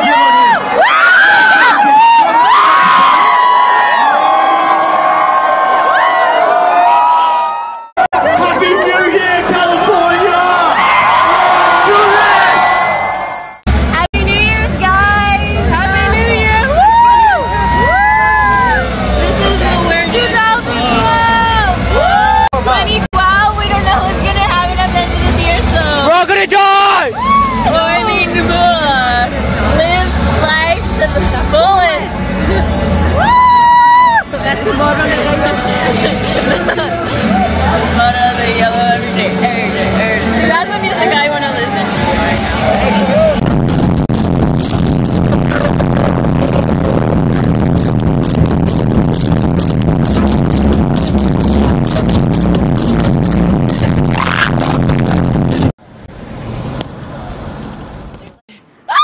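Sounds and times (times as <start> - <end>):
low vehicle rumble: 13.6 - 26.1, 27.1 - 58.8
electronic dance music: 34.3 - 55.8.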